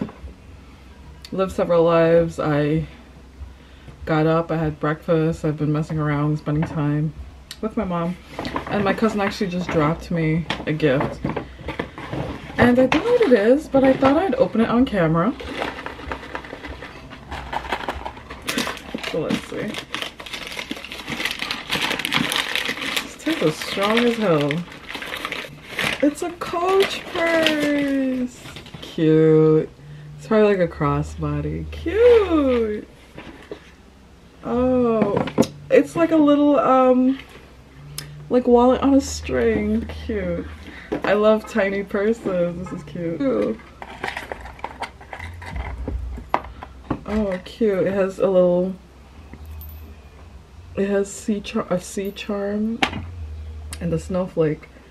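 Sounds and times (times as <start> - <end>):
handling noise rumble: 8.1 - 54.9
wrapping paper rustling: 15.2 - 29.0.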